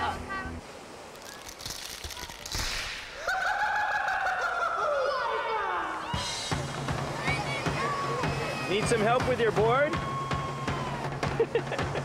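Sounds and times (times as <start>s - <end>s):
faint surf and water: 0.0s - 12.0s.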